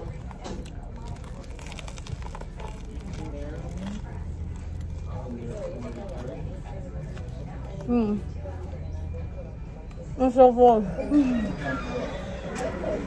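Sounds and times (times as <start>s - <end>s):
chewing crunchy bread: 0.0s - 8.8s
faint voices: 0.0s - 13.0s.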